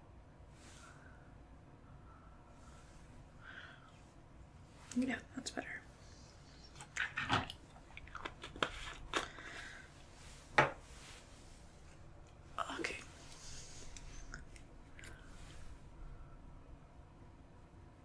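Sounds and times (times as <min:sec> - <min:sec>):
soft clicks and crackles: 0:11.2 - 0:15.8.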